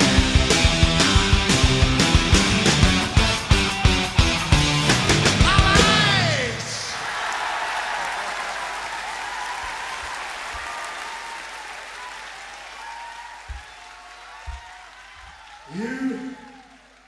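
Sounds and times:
audience applauding and cheering: 5.0s - 17.0s
shouts from audience: 5.4s - 17.0s.

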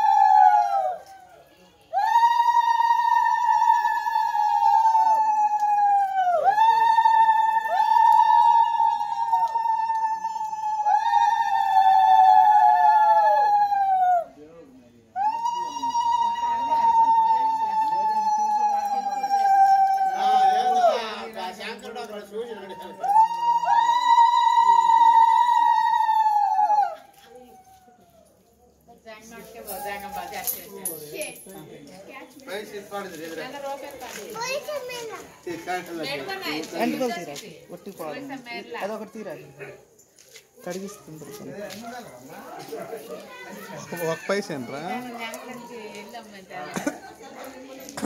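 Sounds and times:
children talking and calling out: 15.1s - 48.0s.

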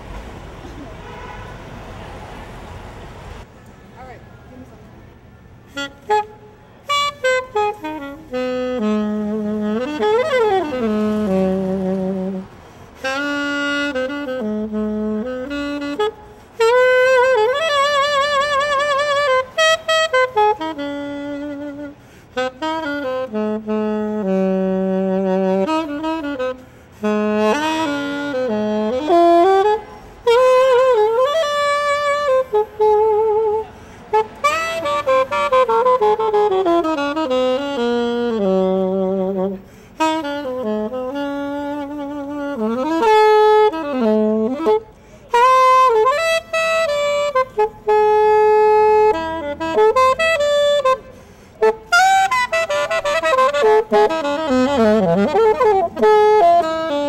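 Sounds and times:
solo alto saxophone jazz melody: 5.5s - 57.0s.

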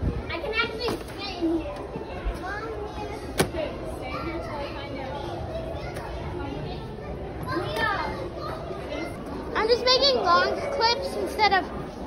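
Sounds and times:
children's voices: 0.0s - 12.0s.

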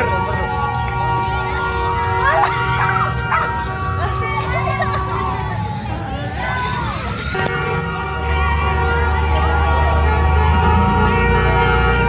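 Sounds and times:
street crowd voices: 0.0s - 12.0s
dog barking: 3.2s - 3.6s.

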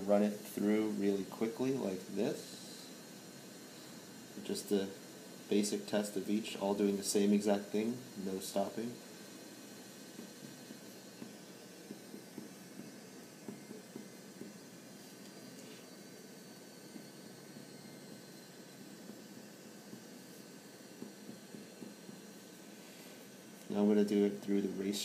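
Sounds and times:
steady low hiss: 0.0s - 15.9s, 18.2s - 25.0s.

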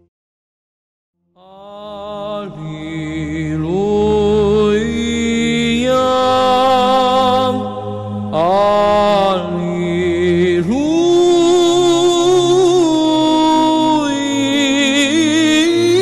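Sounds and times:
person chanting long notes: 1.4s - 16.0s
low steady drone: 1.8s - 16.0s.

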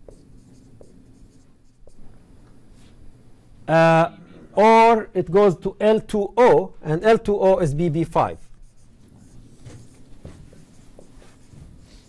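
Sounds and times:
marker drawing on whiteboard: 0.0s - 3.2s, 8.0s - 12.0s.

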